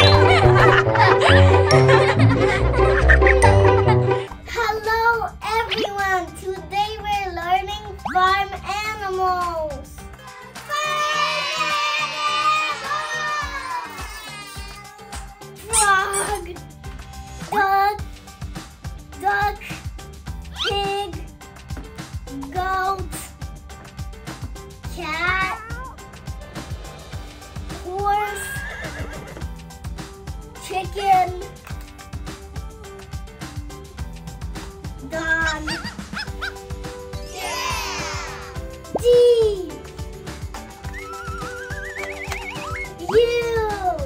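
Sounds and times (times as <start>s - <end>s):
background music with steady beat: 0.0s - 44.0s
cat meowing: 25.4s - 26.0s
dog barking and yipping: 35.4s - 36.6s.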